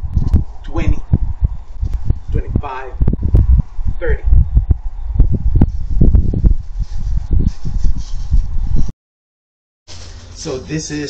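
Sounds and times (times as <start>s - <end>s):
wind buffeting microphone: 0.0s - 8.9s.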